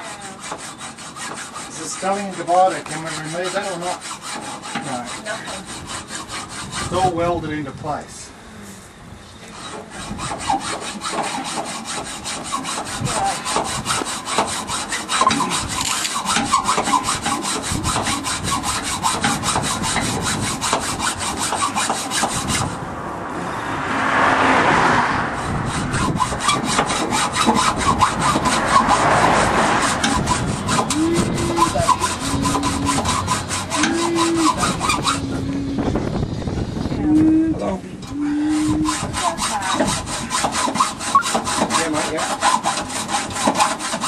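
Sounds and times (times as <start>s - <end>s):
hacksaw sawing through metal: 0.0s - 7.5s, 9.5s - 22.8s, 25.3s - 35.5s, 38.0s - 44.0s.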